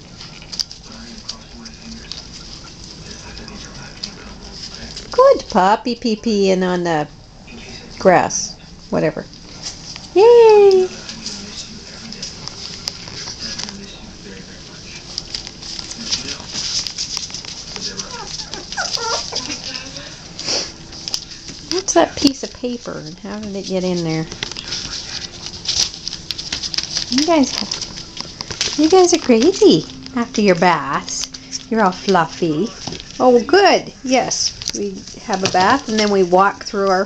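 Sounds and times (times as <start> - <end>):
puppy paws pattering on floor: 0.0 - 6.8, 7.5 - 37.0
puppies yipping and squealing: 16.9 - 20.8.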